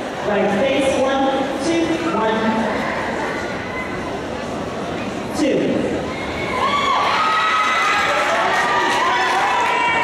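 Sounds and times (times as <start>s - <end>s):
crowd cheering and screaming: 6.1s - 10.0s.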